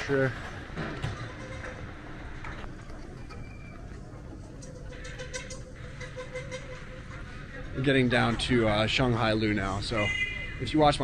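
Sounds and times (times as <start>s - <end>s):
faint hum: 0.0s - 11.0s
low street rumble: 0.0s - 11.0s.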